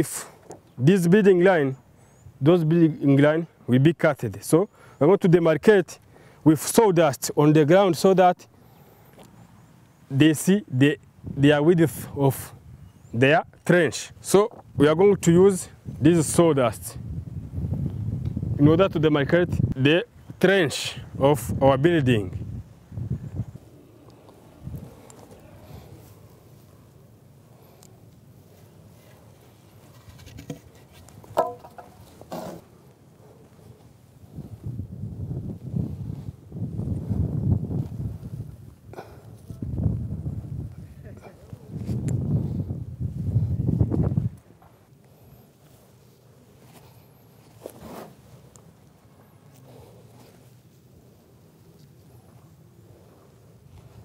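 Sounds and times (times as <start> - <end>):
distant birds chirping: 12.6 - 13.8
scuffing rustle: 44.6 - 54.0.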